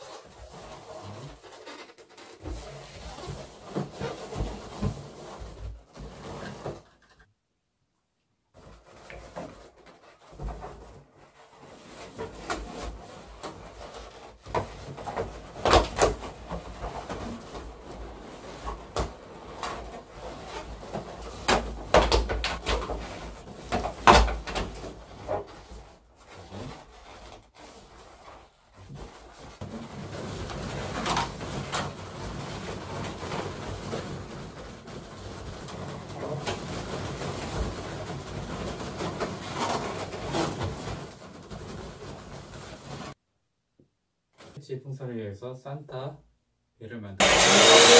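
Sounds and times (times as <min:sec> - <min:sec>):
balloons squeaking and rubbing: 0:00.0 - 0:07.4, 0:08.5 - 0:43.2.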